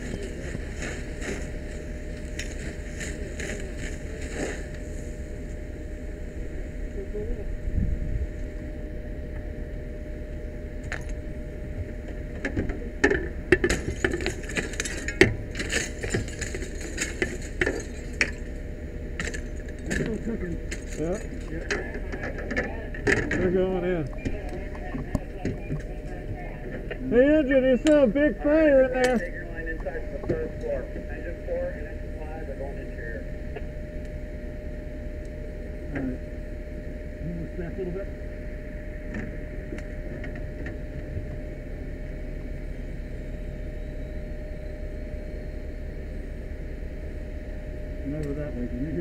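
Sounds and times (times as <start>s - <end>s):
muffled voices: 0.0s - 18.5s, 19.2s - 44.6s, 47.6s - 49.0s
fire engine rumbling: 0.0s - 49.0s.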